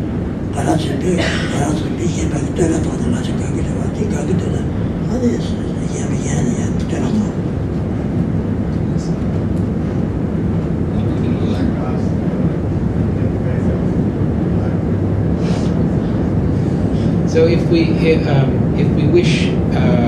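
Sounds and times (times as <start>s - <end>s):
low room noise rumble: 0.0s - 20.0s
man speaking into a microphone: 0.6s - 7.4s, 10.9s - 16.2s, 16.9s - 20.0s.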